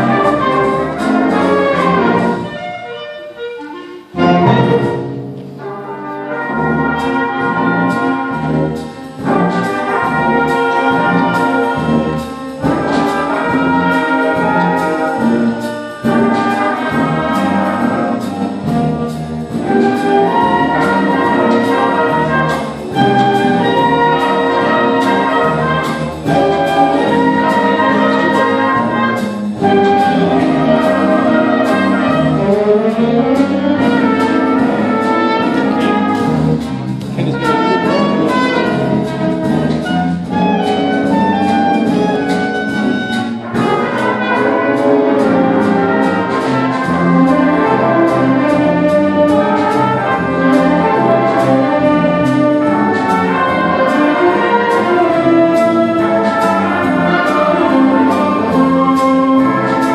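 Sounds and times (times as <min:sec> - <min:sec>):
big band jazz playing live: 0:00.0 - 0:59.9
trumpets and trombones: 0:00.0 - 0:59.9.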